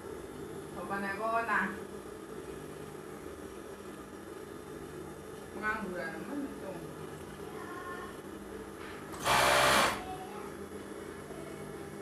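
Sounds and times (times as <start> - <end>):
sewing machine motor humming: 9.1 - 10.1.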